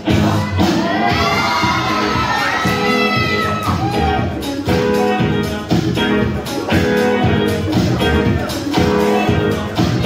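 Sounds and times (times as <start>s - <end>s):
dance music: 0.0s - 10.0s
audience cheering: 0.7s - 4.3s.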